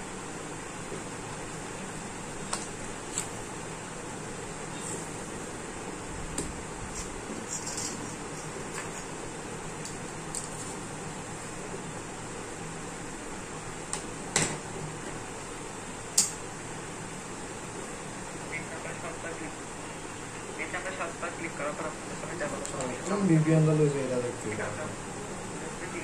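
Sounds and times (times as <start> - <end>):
steady background hiss: 0.0 - 26.0.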